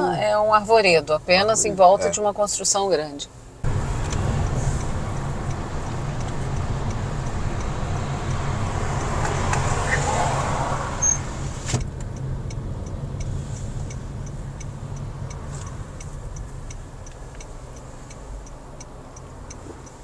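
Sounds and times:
car engine and tyre rumble: 0.0s - 20.0s
faint regular ticking: 3.6s - 9.8s, 11.8s - 20.0s
sharp clicks: 3.9s - 9.8s.

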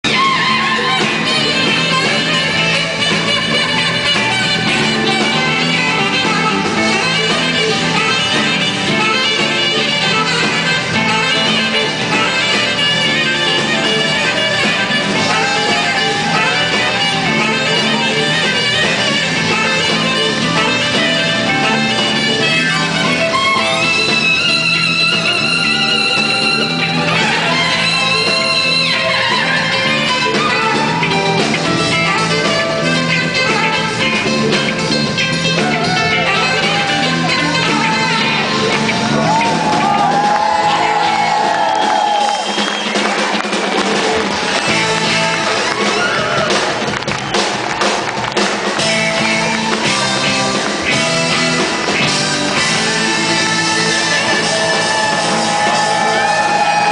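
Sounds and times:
alto saxophone: 0.0s - 47.2s, 48.3s - 56.9s
drums: 0.0s - 56.9s
electric bass: 0.0s - 56.9s
smooth jazz band playing: 0.0s - 56.9s.

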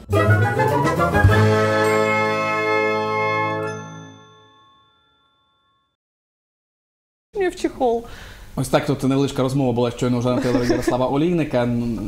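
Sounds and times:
jingle chord ringing: 1.5s - 6.0s.

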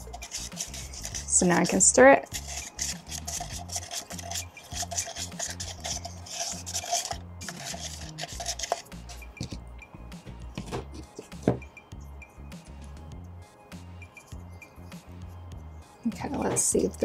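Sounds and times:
plastic spoon scraping in cup: 0.0s - 9.6s
low background music: 0.0s - 17.0s
knock: 10.6s - 11.7s.

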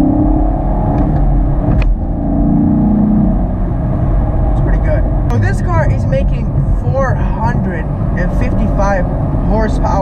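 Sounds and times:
car engine heard from cabin: 0.0s - 10.0s.

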